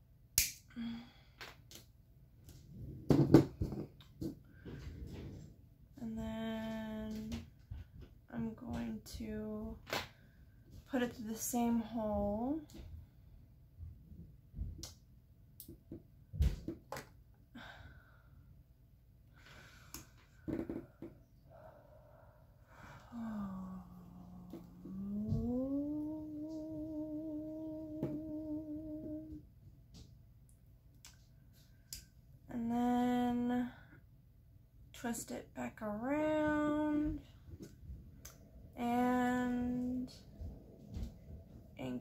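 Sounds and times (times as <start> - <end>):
woman humming: 22.8 - 29.5, 38.8 - 40.2.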